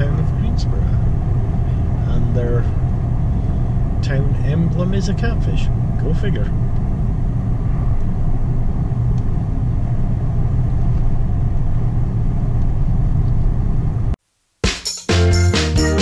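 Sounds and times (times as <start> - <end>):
car driving on paved road: 0.0 - 14.2
music with a beat: 14.6 - 16.0.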